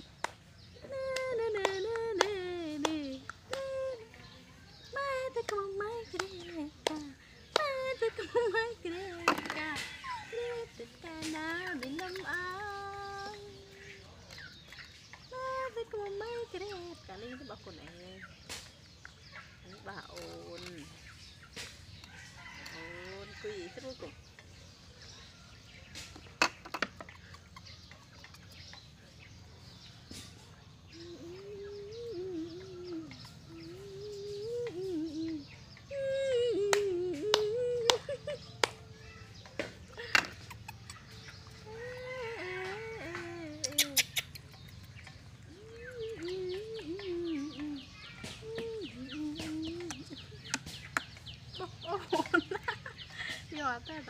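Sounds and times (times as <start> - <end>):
chickens clucking and chirping: 0.0 - 54.0
chicken clucking: 25.1 - 30.6.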